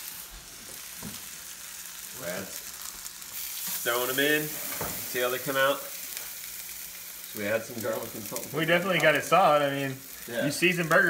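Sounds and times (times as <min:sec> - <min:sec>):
oil sizzling in a skillet: 0:00.0 - 0:11.0.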